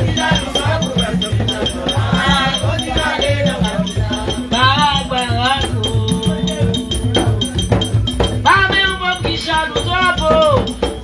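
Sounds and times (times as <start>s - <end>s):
drums beating a steady rhythm: 0.0s - 11.0s
shaken rattle: 0.0s - 11.0s
voices singing a chant: 0.0s - 11.0s.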